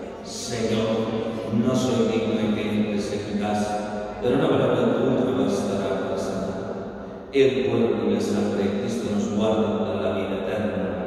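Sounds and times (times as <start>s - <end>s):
man chanting on a held pitch: 0.0s - 6.5s.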